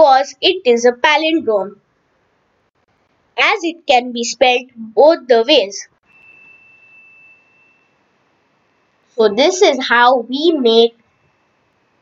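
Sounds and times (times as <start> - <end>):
low hiss: 6.0 - 9.8
faint high-pitched tone: 6.0 - 12.0.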